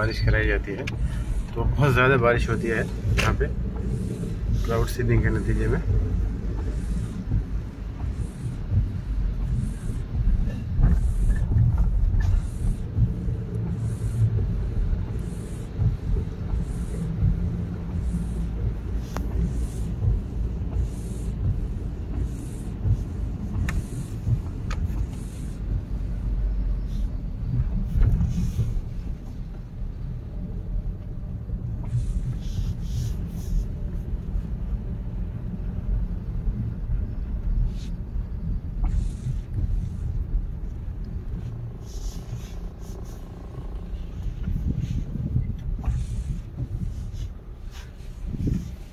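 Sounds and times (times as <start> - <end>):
car engine and tyres rumbling: 0.0 - 48.9
windscreen wipers swishing: 0.0 - 48.9.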